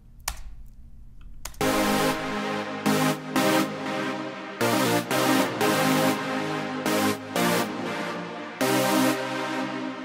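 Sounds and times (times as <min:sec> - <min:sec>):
sawtooth synth lead melody: 0:01.6 - 0:10.0.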